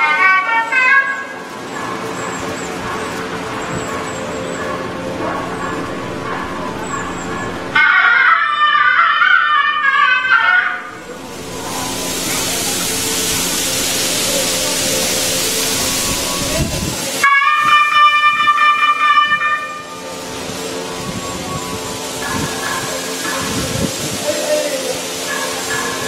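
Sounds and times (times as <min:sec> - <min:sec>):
steady hiss: 0:02.7 - 0:08.1, 0:10.8 - 0:26.0
faint hum: 0:03.9 - 0:08.8, 0:10.6 - 0:17.2.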